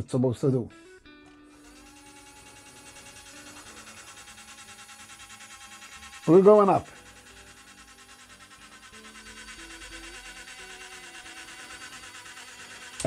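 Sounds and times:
small electric motor buzzing: 0.7s - 13.0s.

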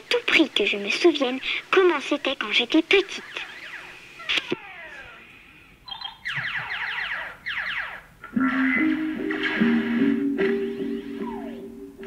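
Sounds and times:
cassette tape rewinding: 2.1s - 12.0s
rapid falling chirps: 3.1s - 12.0s.

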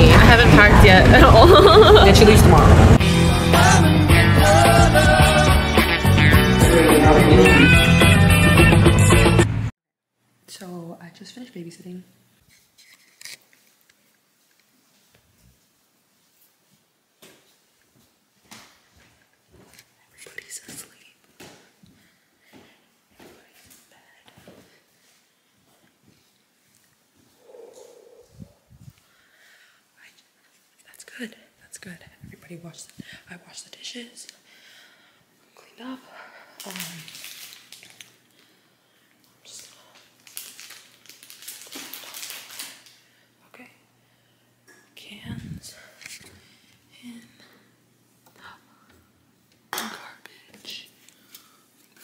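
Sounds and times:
woman whispering: 20.0s - 21.2s, 30.0s - 34.3s, 39.4s - 40.0s, 44.9s - 46.0s, 46.9s - 47.5s, 49.8s - 51.0s.

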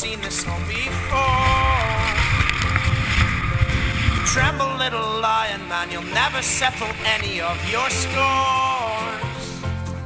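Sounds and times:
wind buffeting microphone: 0.0s - 9.8s
strummed folk-rock music: 0.0s - 10.0s.

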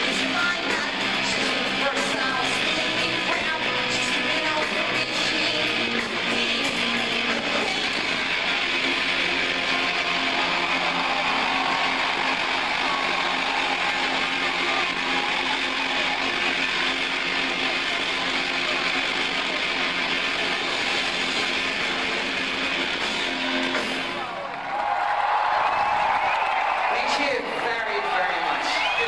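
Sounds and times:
crowd noise: 0.0s - 29.0s.

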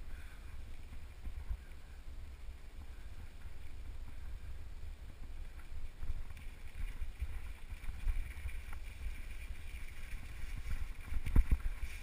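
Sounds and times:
wind rumble on microphone: 0.0s - 12.0s
bike rattling over gravel: 5.4s - 12.0s.

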